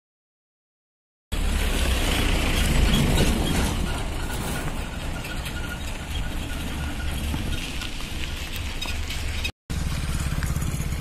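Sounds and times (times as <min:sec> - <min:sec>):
pickup truck driving past: 0:01.4 - 0:07.9.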